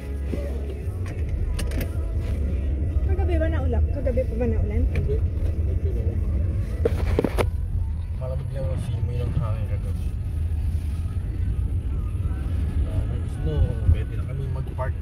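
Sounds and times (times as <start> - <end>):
car engine and road rumble: 0.0 - 15.0.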